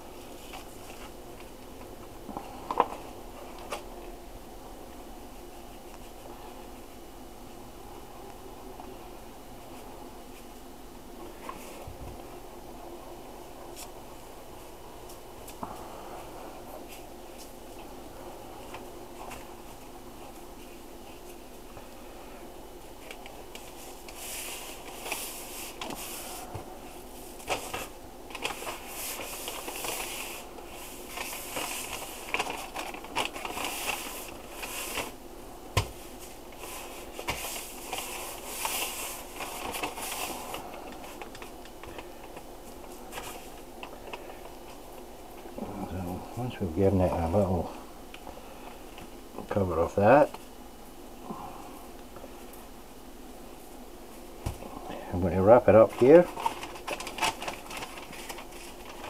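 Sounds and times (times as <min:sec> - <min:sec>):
faint steady hum: 0:00.0 - 0:59.0
paper rustling and scraping: 0:00.2 - 0:01.5, 0:23.0 - 0:35.2, 0:35.8 - 0:44.8, 0:55.8 - 0:59.0.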